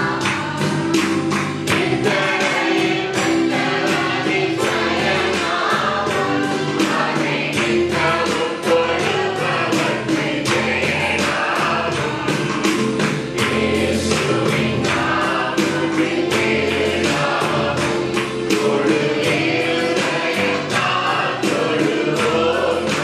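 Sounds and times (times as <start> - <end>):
backing music with steady beat: 0.0 - 23.0
men singing worship song: 0.0 - 23.0.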